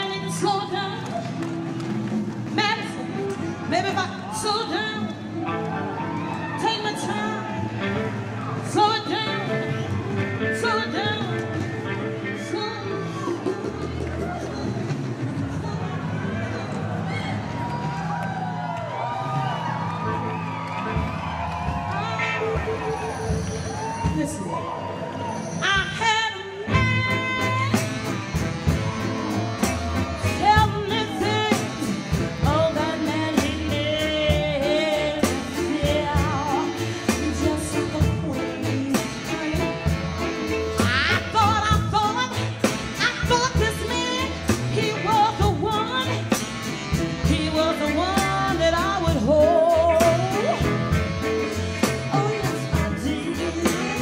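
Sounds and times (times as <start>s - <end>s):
live soul band playing: 0.0s - 54.0s
person singing into microphone: 52.0s - 54.0s.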